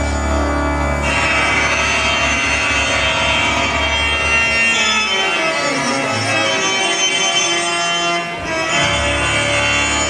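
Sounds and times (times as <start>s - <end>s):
loud show music: 0.0s - 10.0s.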